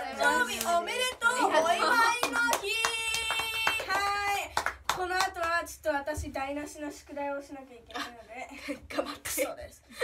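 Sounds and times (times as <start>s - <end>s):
people clapping: 0.0s - 5.8s.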